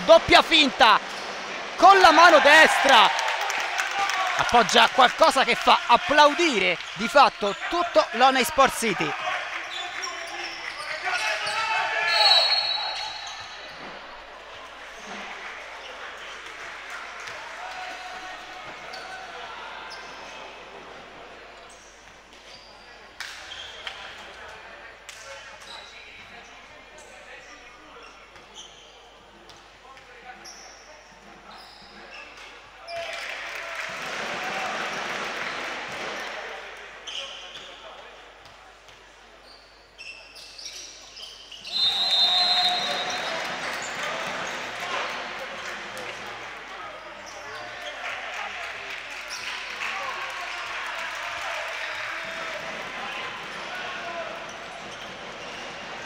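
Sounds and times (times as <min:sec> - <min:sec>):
sneakers squeaking: 0:00.0 - 0:03.1, 0:04.6 - 0:14.3, 0:18.7 - 0:20.3, 0:21.7 - 0:24.0, 0:28.0 - 0:29.7, 0:30.4 - 0:33.0, 0:37.0 - 0:37.8, 0:39.4 - 0:44.9, 0:54.4 - 0:55.9
crowd noise: 0:00.0 - 0:25.1, 0:41.6 - 0:49.8, 0:50.5 - 0:56.0
referee's whistle: 0:11.4 - 0:13.6, 0:41.5 - 0:43.4.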